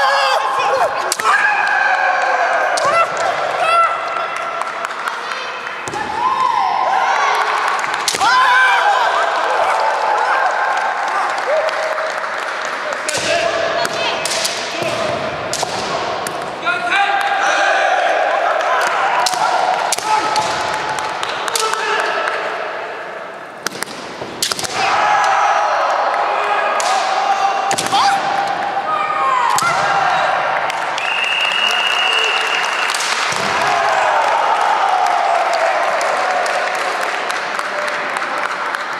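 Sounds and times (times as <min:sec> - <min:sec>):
fighters shouting: 0:00.0 - 0:04.2, 0:24.7 - 0:30.4
bamboo swords striking: 0:13.9 - 0:16.4, 0:23.6 - 0:24.9, 0:26.8 - 0:28.4.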